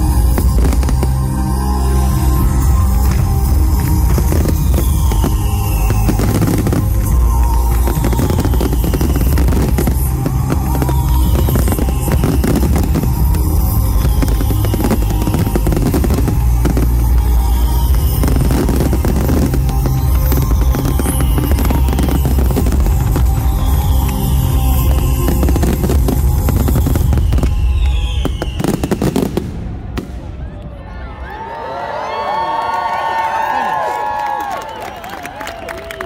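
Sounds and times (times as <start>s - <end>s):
music with deep bass: 0.0s - 29.3s
fireworks bursting: 0.0s - 30.5s.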